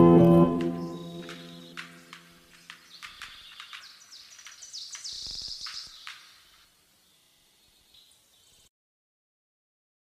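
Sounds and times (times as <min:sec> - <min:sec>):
low music note: 0:00.0 - 0:01.7
scattered clicks: 0:00.6 - 0:06.2.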